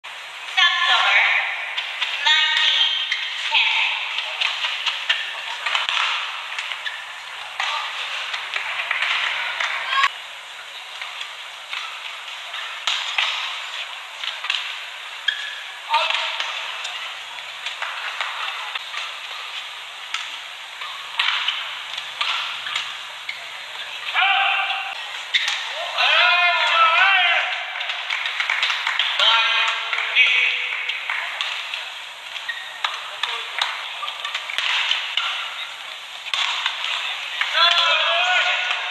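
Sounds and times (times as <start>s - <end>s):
crowd noise and voices: 0.0s - 38.9s
shoes squeaking on court: 1.8s - 10.1s, 10.7s - 25.8s, 30.8s - 37.1s
racket striking shuttlecock: 20.1s - 22.9s.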